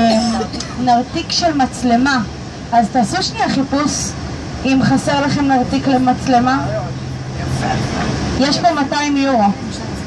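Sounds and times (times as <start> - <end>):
person speaking: 0.0 - 0.8
vehicle engine humming: 0.0 - 10.0.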